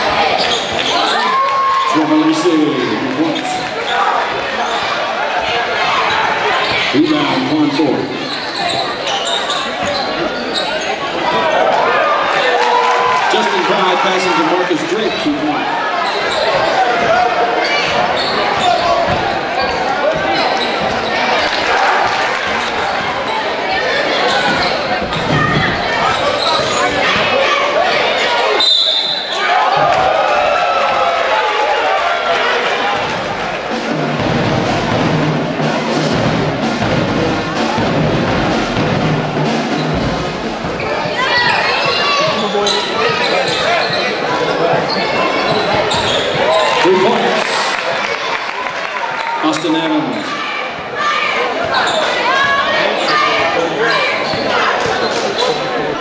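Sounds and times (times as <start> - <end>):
crowd voices: 0.0 - 56.0.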